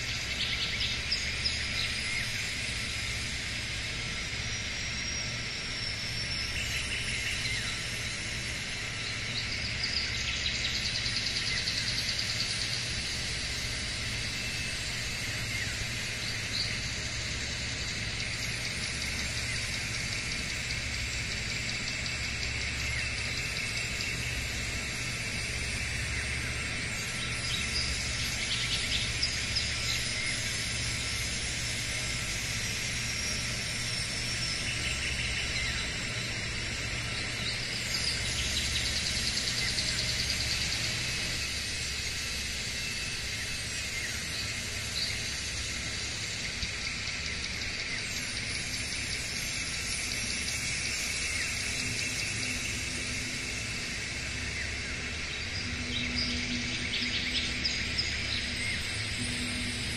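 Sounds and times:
birds chirping and trilling: 0.0 - 59.9
steady low hum: 0.0 - 59.9.

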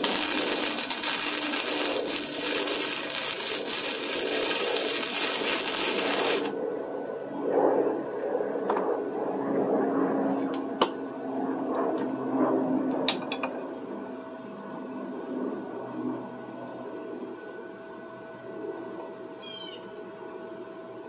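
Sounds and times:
arc welder crackling: 0.0 - 6.6.

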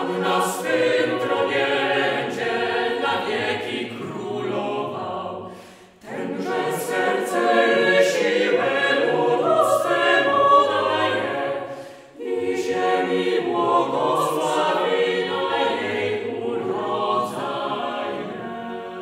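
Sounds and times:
choir singing a cappella: 0.0 - 19.0.

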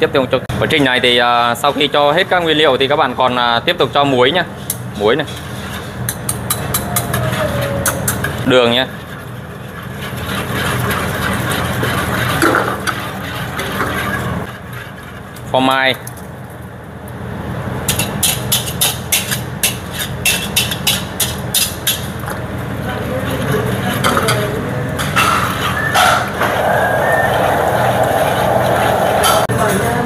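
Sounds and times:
whisk scraping a metal wok: 4.6 - 15.5, 17.9 - 22.1, 22.8 - 24.4
low hum: 26.2 - 29.6.

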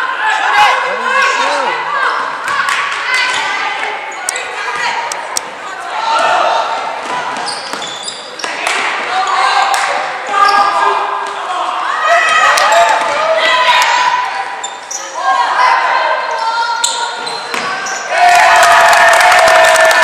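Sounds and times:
sneaker squeaks: 7.0 - 9.5, 10.3 - 10.8, 14.3 - 15.4, 16.1 - 18.1.

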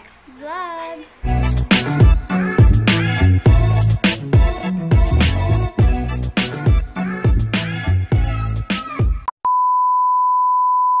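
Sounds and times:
outro music: 1.2 - 8.7.

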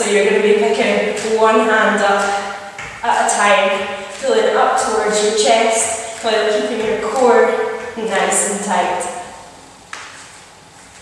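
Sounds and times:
body thumping onto exercise mat: 2.2 - 3.0.

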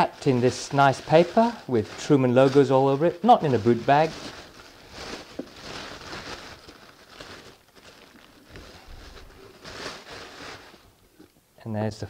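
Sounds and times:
wrapping paper rustling and crinkling: 0.0 - 11.2.

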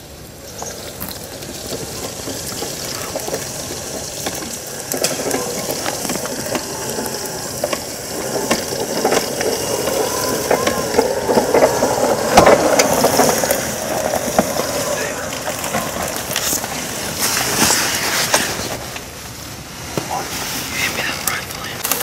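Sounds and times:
electric drive motors running: 0.0 - 19.1
rubber tracks clattering: 0.0 - 19.3
motor whine: 2.6 - 17.5.

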